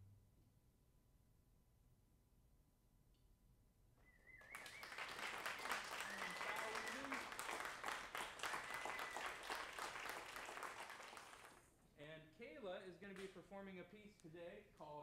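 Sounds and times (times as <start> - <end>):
person whistling: 4.0 - 7.3, 8.5 - 9.6
cheering: 4.4 - 11.6
audience applauding: 4.4 - 11.7.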